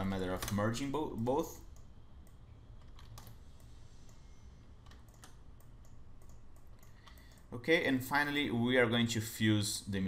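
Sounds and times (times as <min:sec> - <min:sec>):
low background hum: 0:00.0 - 0:10.0
keyboard and mouse clicks: 0:00.2 - 0:00.8, 0:01.7 - 0:04.2, 0:04.8 - 0:07.5.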